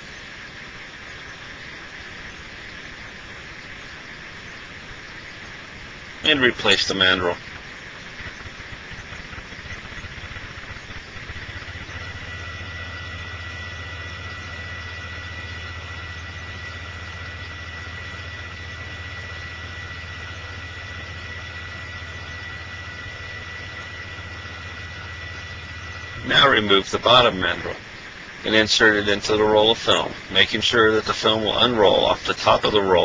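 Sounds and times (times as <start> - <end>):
high-pitched whine: 0.0 - 33.0
low hum: 0.0 - 33.0.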